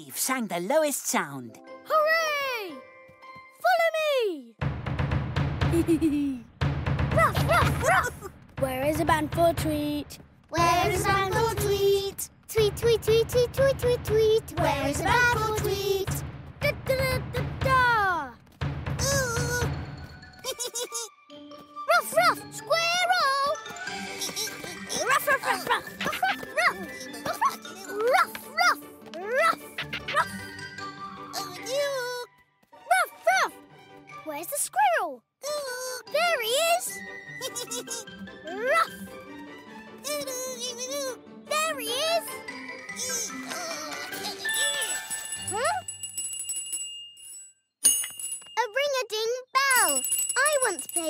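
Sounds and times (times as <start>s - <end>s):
light tinkling music: 41.7s - 51.0s
small bell ringing: 44.4s - 49.0s, 49.6s - 51.0s.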